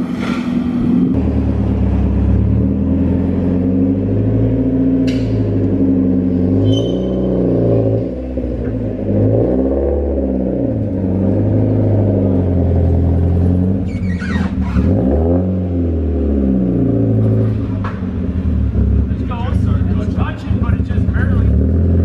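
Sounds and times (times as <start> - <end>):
car engine revving at low speed: 0.0 - 22.0
high falling squeak: 6.6 - 7.5, 13.8 - 14.8.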